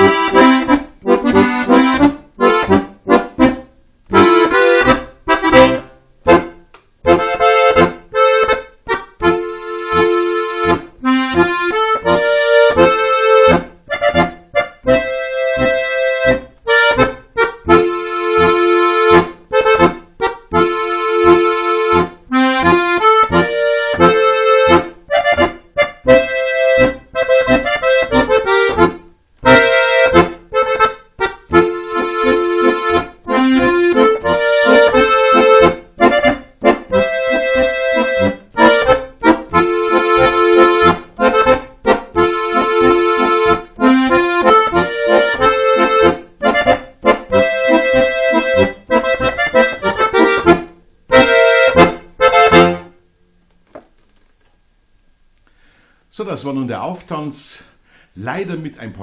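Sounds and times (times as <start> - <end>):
accordion playing dance tune: 0.0 - 53.1, 55.7 - 59.0.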